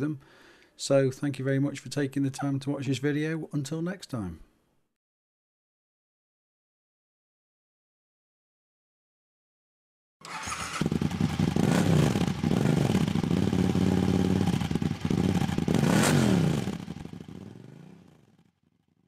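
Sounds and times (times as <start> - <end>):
vehicle engine revving: 10.3 - 18.1.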